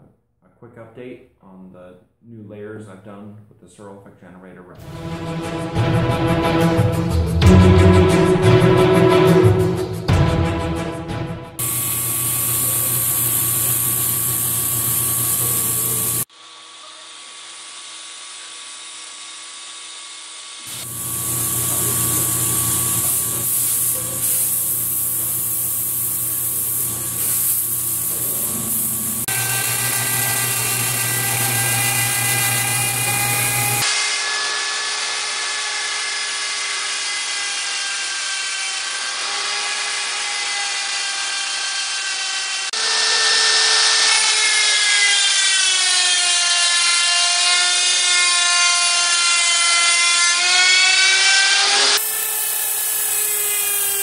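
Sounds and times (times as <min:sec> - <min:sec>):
grinder motor whine: 0:11.6 - 0:35.4, 0:50.8 - 0:54.0.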